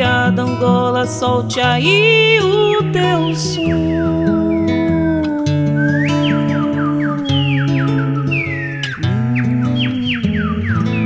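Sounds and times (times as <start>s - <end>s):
whistled bird calls: 3.0s - 11.0s.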